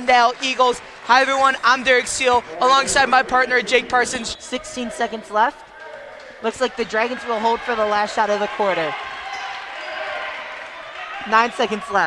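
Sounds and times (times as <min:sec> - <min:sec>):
faint echoing voices: 0:00.0 - 0:12.0
crowd murmur: 0:01.9 - 0:06.5.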